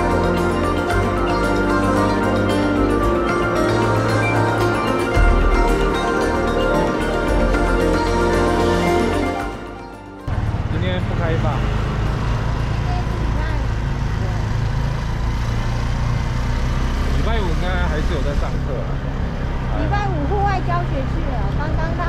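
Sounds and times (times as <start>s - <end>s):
motor vehicle low rumble: 0.0s - 22.0s
people talking: 12.8s - 14.5s, 19.8s - 22.0s.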